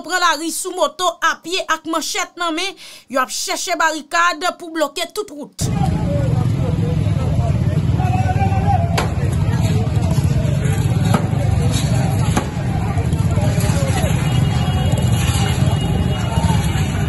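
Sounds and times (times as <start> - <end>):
men talking: 5.6 - 12.2
low rumble: 5.6 - 17.0
sharp knocks: 9.0 - 9.2.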